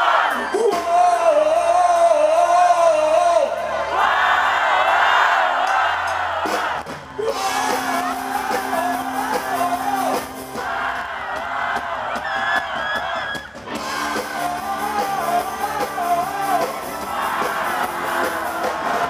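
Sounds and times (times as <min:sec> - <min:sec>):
man singing: 0:00.3 - 0:03.6, 0:07.2 - 0:10.3, 0:13.9 - 0:19.0
crowd cheering and whooping: 0:03.4 - 0:19.0
live rock band playing: 0:06.4 - 0:19.0.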